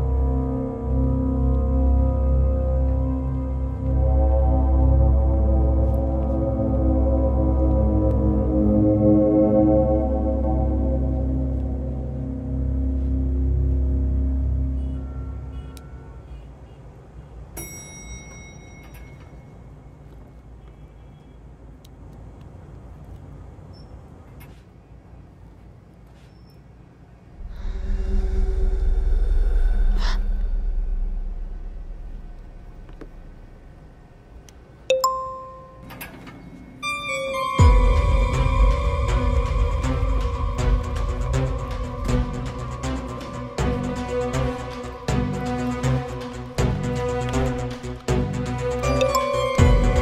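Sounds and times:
low sustained film-score drone: 0.0 - 16.4, 27.3 - 34.7, 36.9 - 50.0
lift arrival chime: 13.4 - 16.2, 17.6 - 19.8, 34.9 - 43.6, 48.8 - 50.0
bright electronic ding: 34.9 - 35.9.

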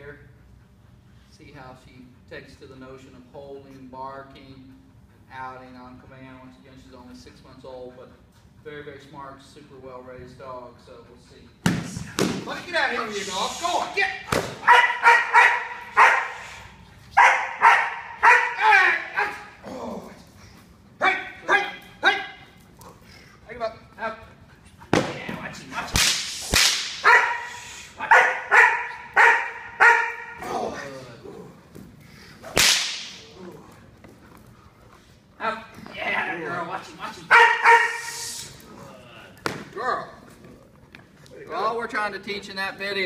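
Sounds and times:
dog barking: 14.6 - 16.5, 17.2 - 19.5, 27.0 - 30.4, 37.3 - 38.2
sharp cracks: 25.9 - 27.1, 32.5 - 33.3.

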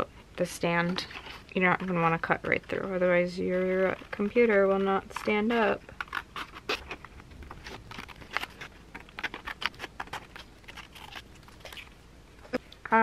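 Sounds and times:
scissors snipping paper: 0.8 - 11.9.

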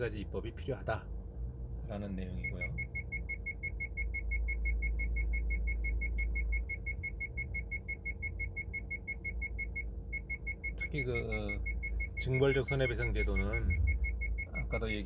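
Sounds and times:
low car rumble: 0.0 - 15.0
car warning beeper: 2.3 - 15.0.

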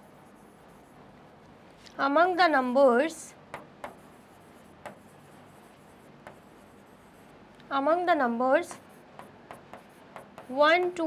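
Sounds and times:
stylus writing on touchscreen: 0.0 - 1.0, 2.2 - 11.0
steady low hum: 0.0 - 11.0.

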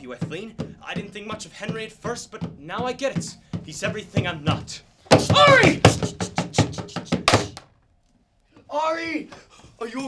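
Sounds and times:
sharp knocks and thuds: 0.0 - 7.7.

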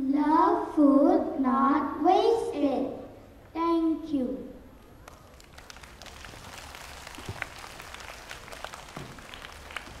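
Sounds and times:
children applauding: 5.0 - 10.0.

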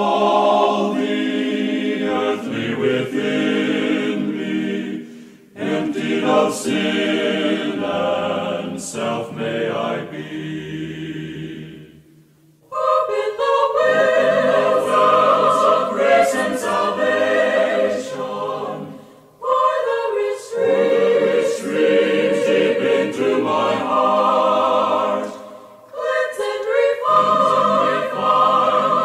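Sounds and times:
choir singing a hymn: 0.0 - 29.0
singers breathing: 5.0 - 5.6, 18.9 - 19.4, 25.3 - 25.9.

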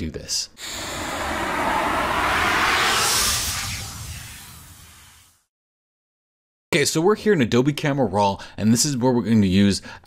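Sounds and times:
low rumble: 0.6 - 5.3
whoosh: 0.6 - 5.5.

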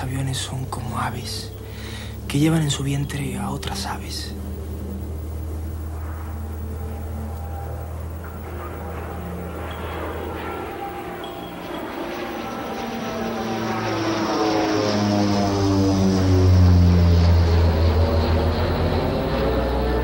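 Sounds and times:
airplane engine drone: 0.0 - 20.0.

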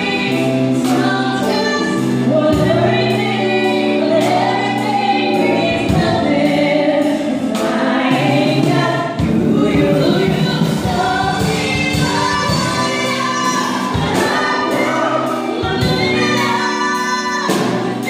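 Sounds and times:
keyboard bass notes: 0.0 - 18.0
man and woman singing duet: 0.0 - 18.0.

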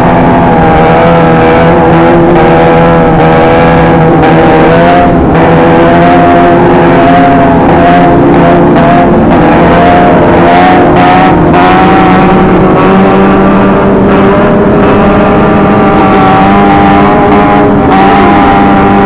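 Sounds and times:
motorcycle engines revving high: 0.0 - 19.0.

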